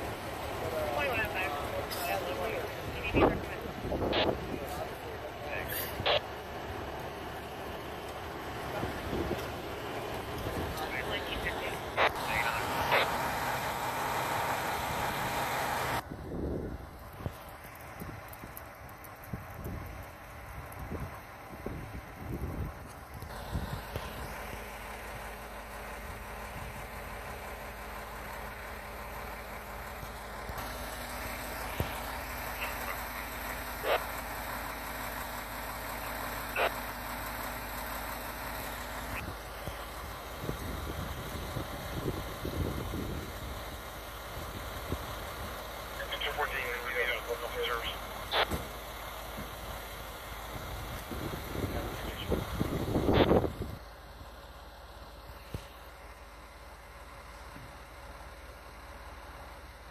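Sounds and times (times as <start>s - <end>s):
fire engine idling: 0.0s - 59.9s.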